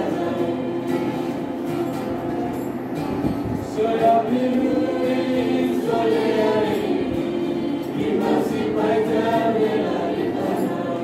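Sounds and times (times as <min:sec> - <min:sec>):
group singing gospel song: 0:00.0 - 0:01.7, 0:03.6 - 0:11.0.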